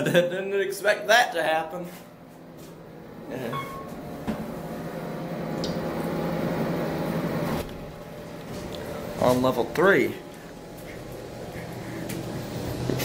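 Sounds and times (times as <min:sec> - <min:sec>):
elevator mechanical hum: 0:00.0 - 0:13.0
brief high tone: 0:03.5 - 0:04.0.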